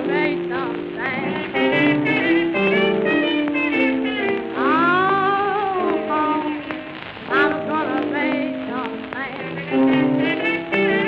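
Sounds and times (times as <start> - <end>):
early blues record playing: 0.0 - 11.0
record surface crackle and clicks: 0.0 - 11.0.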